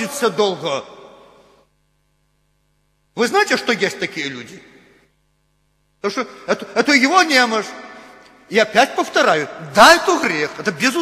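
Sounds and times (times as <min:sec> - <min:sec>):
speech echo: 0:00.0 - 0:01.7, 0:03.1 - 0:05.2, 0:06.0 - 0:11.0
faint mains hum: 0:00.0 - 0:11.0.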